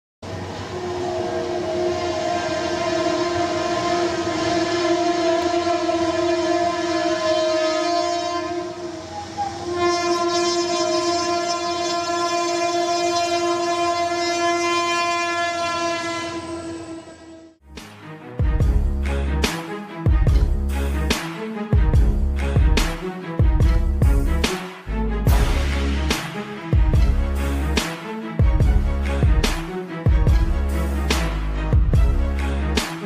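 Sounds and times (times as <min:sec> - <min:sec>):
locomotive horn blasts: 0:00.5 - 0:17.6.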